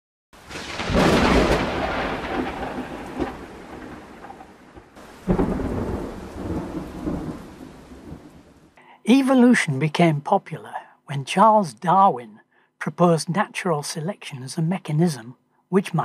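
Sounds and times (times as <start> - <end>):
steady rain: 0.4 - 8.8
rolls of thunder: 0.5 - 8.6.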